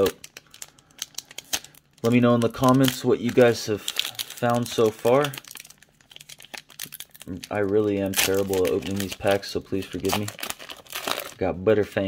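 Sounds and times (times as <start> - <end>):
foil wrapper crinkling and tearing: 0.0 - 11.5.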